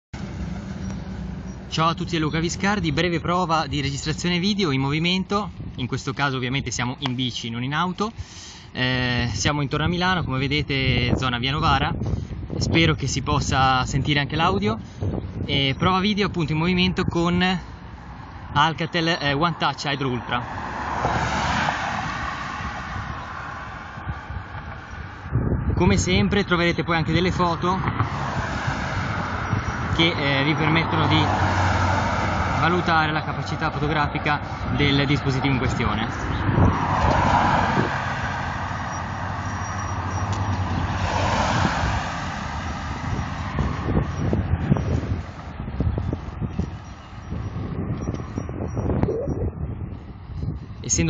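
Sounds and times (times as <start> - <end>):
car driving away: 0.2 - 2.7, 20.3 - 25.3, 27.8 - 49.6
wind buffeting microphone: 0.2 - 8.3, 8.9 - 51.0.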